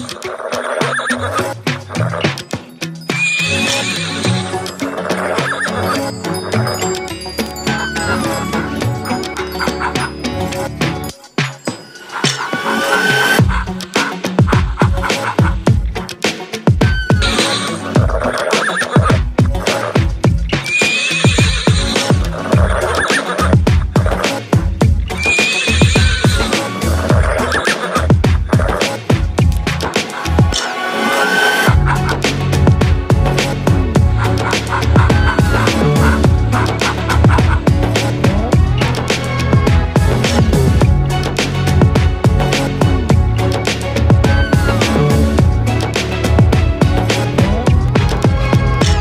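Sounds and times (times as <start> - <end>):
horse whinny: 3.2 - 6.0, 16.9 - 19.1, 20.7 - 23.6, 25.2 - 28.1
music with stepping bass line: 13.4 - 18.4, 19.0 - 30.6, 31.7 - 49.0.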